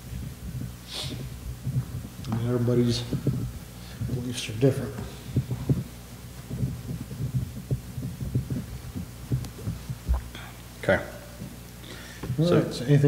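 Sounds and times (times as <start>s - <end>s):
electrical hum: 0.0s - 13.0s.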